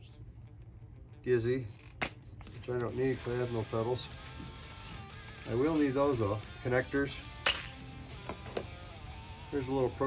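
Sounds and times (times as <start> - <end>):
guitar music: 2.9 - 10.0.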